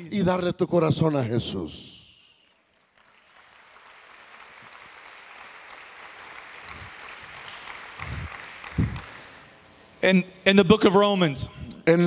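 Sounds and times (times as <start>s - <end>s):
congregation applauding: 2.5s - 9.6s.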